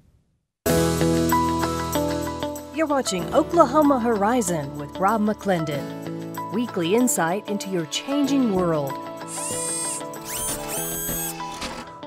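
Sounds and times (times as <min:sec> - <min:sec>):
electronic theme music: 0:07.8 - 0:11.8.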